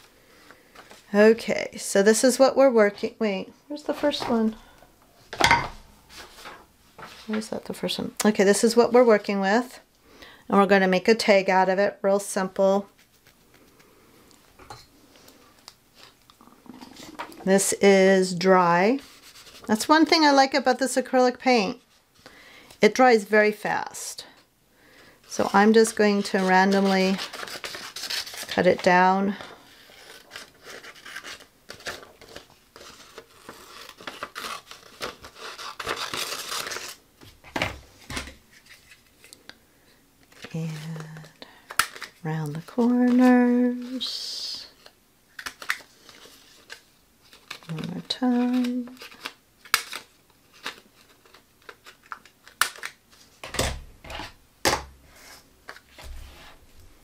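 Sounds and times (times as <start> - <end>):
paper rustling: 25.3 - 39.4, 44.8 - 53.4.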